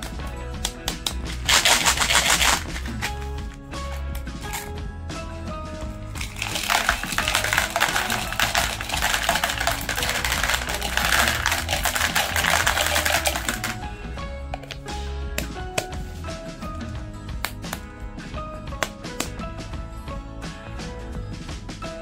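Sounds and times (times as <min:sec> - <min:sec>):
background music: 0:00.0 - 0:22.0
candies clattering into plastic: 0:00.7 - 0:04.7, 0:06.1 - 0:13.8.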